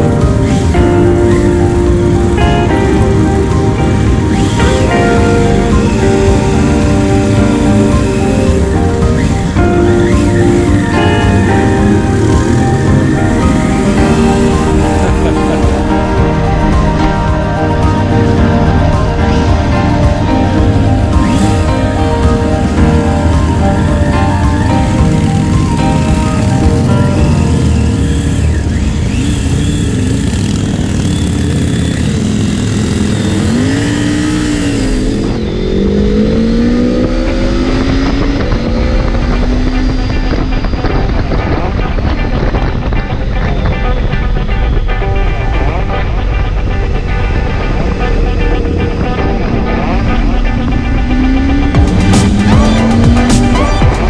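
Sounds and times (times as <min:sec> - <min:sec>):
background music: 0:00.0 - 0:54.0
motorcycle engine accelerating: 0:00.0 - 0:54.0.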